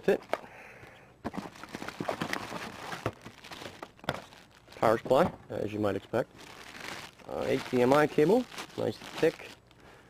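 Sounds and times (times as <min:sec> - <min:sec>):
plastic bags crinkling: 0:01.3 - 0:05.2, 0:06.1 - 0:09.8.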